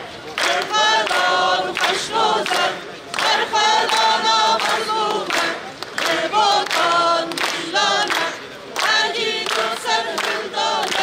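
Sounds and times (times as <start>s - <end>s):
crowd singing in unison: 0.0s - 11.0s.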